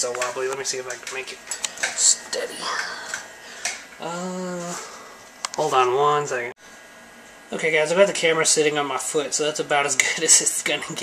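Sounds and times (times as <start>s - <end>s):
man saying uhh: 4.0s - 5.1s.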